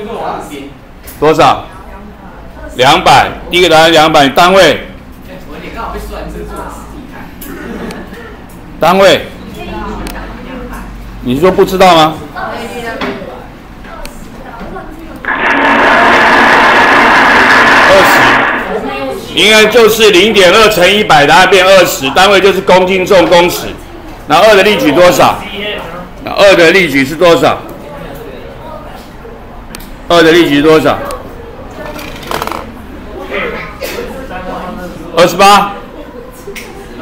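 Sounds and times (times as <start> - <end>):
faint student voices: 5.3 - 8.6, 27.6 - 30.1, 31.0 - 35.1, 35.8 - 37.0
rough whirring noise: 15.2 - 19.3.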